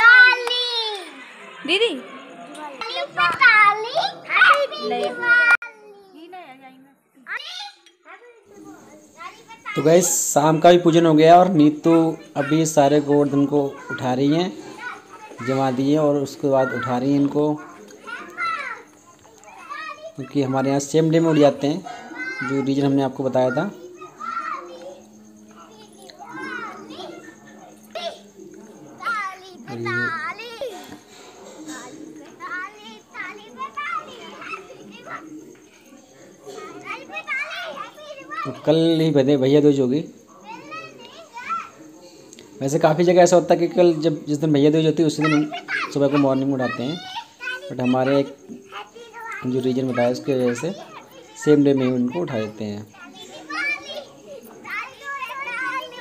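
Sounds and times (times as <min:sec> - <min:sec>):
children talking and playing: 0:00.0 - 0:56.0.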